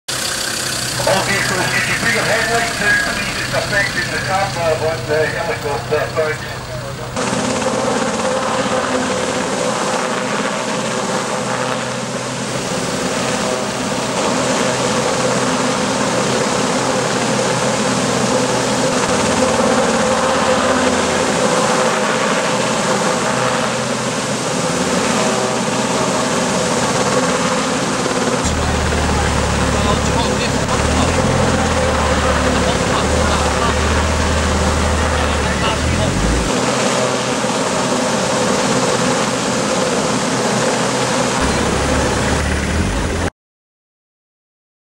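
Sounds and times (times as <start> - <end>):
helicopter drone overhead: 0.1 - 43.3
people's voices: 0.8 - 7.2, 28.4 - 36.6, 41.4 - 43.3
deep rumble: 28.4 - 36.6, 41.4 - 43.3.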